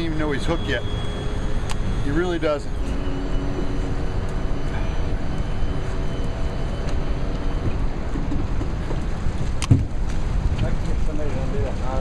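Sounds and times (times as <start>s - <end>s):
boat motor rumbling: 0.0s - 12.0s.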